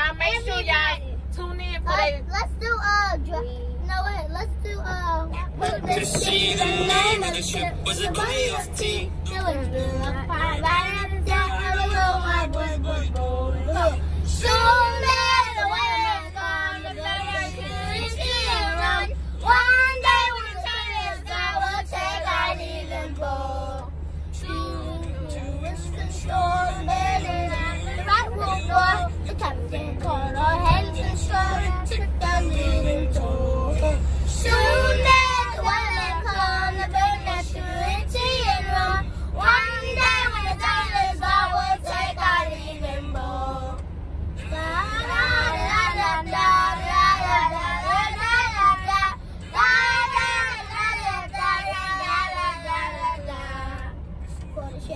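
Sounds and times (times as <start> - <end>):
moving van rumble: 0.0 - 54.9
girls singing together: 5.5 - 23.8, 24.4 - 43.8, 44.4 - 53.9.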